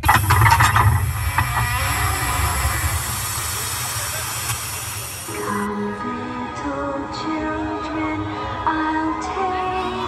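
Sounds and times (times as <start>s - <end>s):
rushing noise with low rumble: 0.0s - 5.4s
music with held notes: 5.4s - 10.0s.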